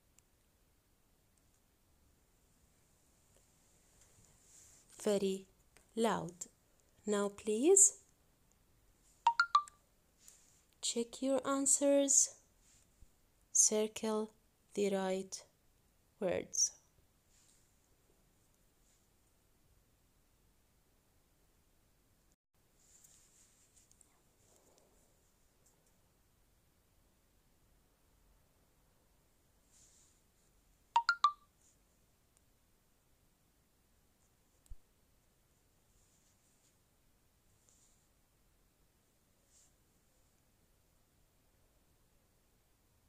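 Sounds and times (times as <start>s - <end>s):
short electronic beeps: 9.3s - 9.7s, 31.0s - 31.4s.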